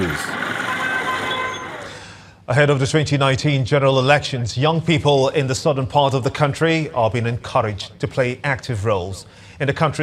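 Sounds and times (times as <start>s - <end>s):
motorcycles running: 0.0s - 2.0s.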